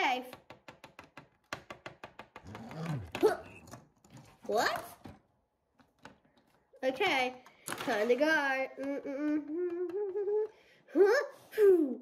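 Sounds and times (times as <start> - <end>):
plastic toy tapping on baseplate: 0.3 - 2.8
person making low voiced sound: 2.5 - 3.4.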